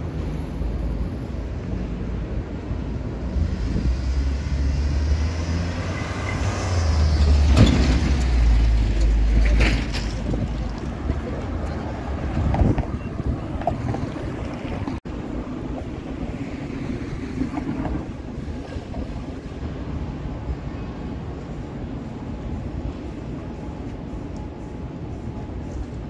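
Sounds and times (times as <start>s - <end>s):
low traffic rumble: 0.0s - 26.0s
wind noise on microphone: 1.6s - 26.0s.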